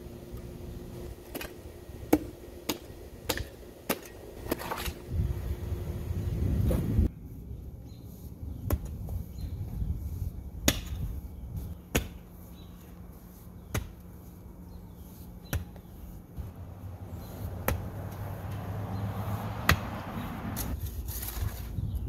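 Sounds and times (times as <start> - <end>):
shovel scraping through clay: 10.0 - 16.5, 19.2 - 21.9
shovel chopping into clay: 11.9 - 12.3, 13.6 - 14.1.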